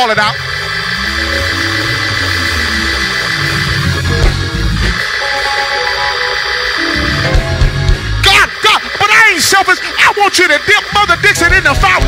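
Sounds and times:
keyboard sustained chords: 0.0 - 9.8.

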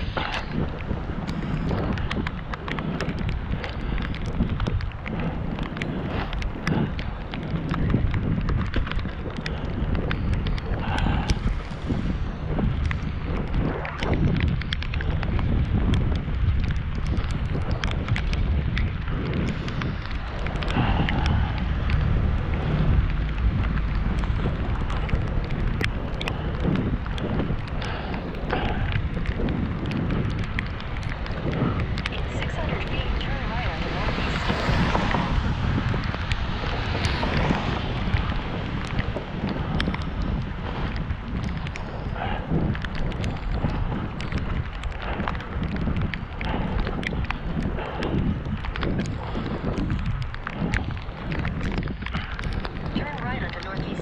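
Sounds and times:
wind on microphone: 0.0 - 54.0
car tyres hissing on wet road: 30.6 - 40.8.

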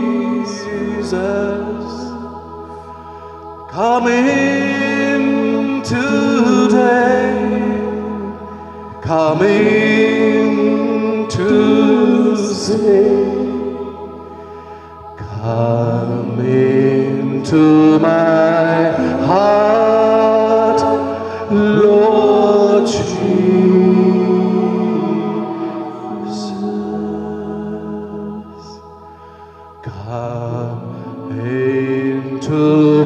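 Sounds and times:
man singing a hymn: 0.0 - 2.4, 3.7 - 14.0, 15.2 - 28.9, 29.8 - 33.0
sustained background music: 0.0 - 33.0.

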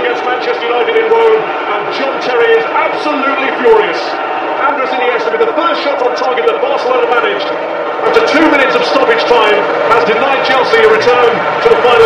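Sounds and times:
man commentating: 0.0 - 12.0
stadium crowd noise: 0.0 - 12.0.

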